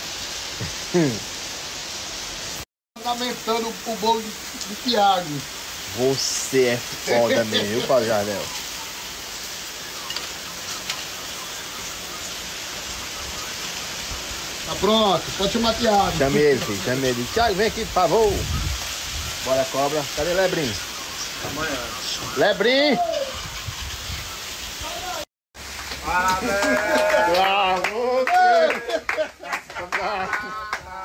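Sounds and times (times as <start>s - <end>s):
steady rain falling: 0.0s - 31.0s.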